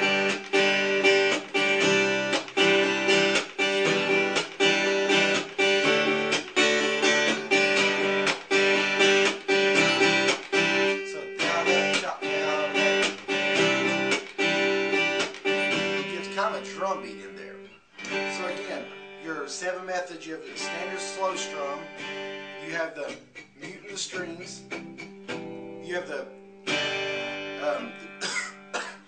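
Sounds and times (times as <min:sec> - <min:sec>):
acoustic guitar chop strumming: 0:00.0 - 0:29.0.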